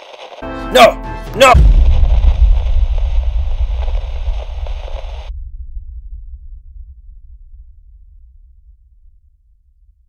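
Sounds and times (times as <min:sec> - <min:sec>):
deep explosion rumble: 0:01.6 - 0:10.0.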